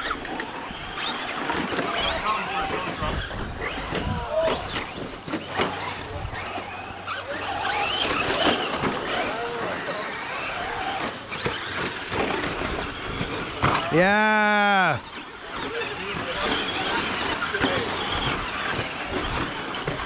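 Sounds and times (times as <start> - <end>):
electric motors whining: 0.0 - 20.0
tyres scrabbling over dirt: 0.0 - 20.0.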